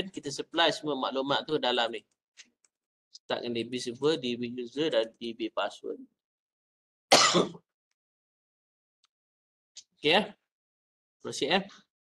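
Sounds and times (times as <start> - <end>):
man clearing throat: 7.1 - 7.6.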